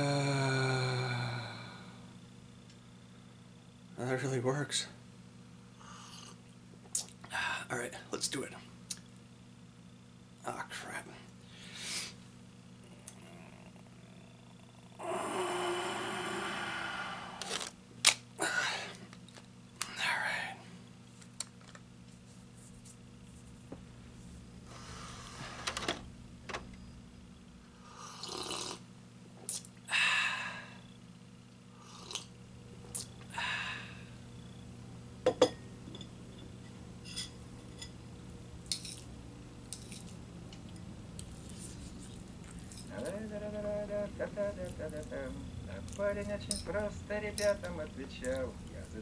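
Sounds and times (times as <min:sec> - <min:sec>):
person mumbling a word: 0:00.0 - 0:01.6
low hum: 0:22.0 - 0:28.0, 0:32.4 - 0:49.0.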